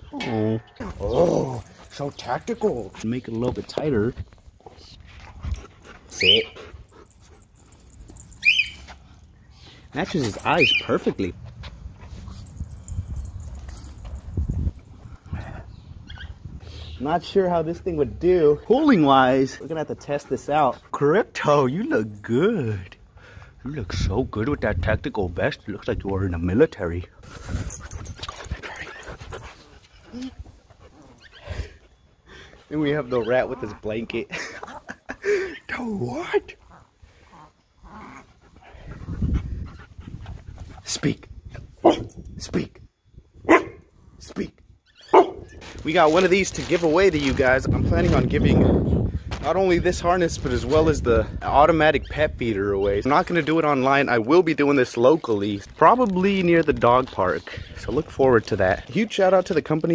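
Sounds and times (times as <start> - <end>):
dog paws tapping on concrete: 0.9 - 15.4, 25.9 - 35.2, 45.1 - 48.5, 49.2 - 59.9
dog panting: 5.1 - 10.5, 27.2 - 34.3, 36.6 - 40.9.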